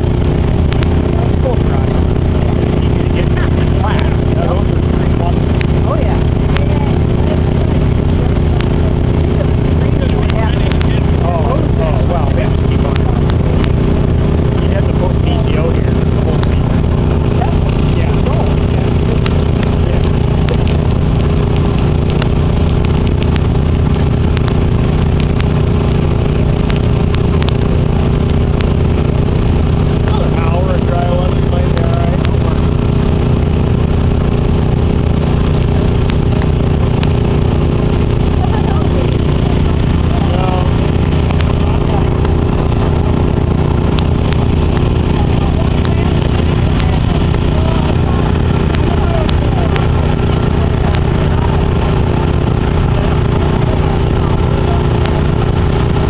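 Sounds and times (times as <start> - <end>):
faint voices talking: 0.0 - 56.0
small engine idling: 0.0 - 56.0.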